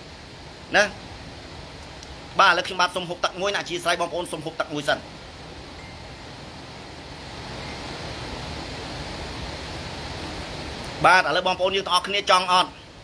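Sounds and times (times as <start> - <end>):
steady rushing hiss: 0.0 - 13.0.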